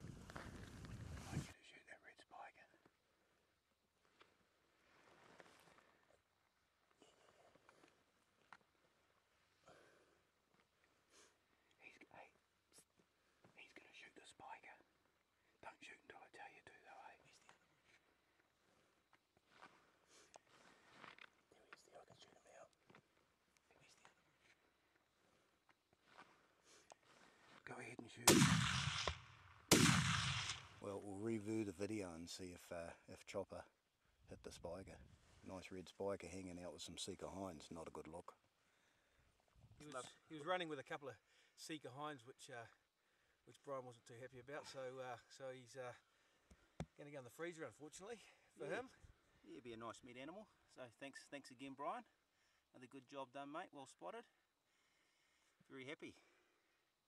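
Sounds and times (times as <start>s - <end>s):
faint whispered voice: 1.1s - 3.0s, 11.7s - 18.8s, 21.5s - 22.8s, 23.6s - 24.6s, 27.6s - 28.3s
close rustling noise: 4.0s - 6.0s, 17.7s - 21.5s
rifle shot: 28.2s - 30.8s.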